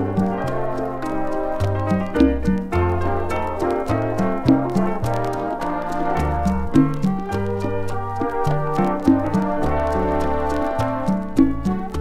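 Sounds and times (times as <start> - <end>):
bass line: 0.0 - 12.0
brass section playing chords: 0.0 - 12.0
percussion strokes: 0.0 - 12.0.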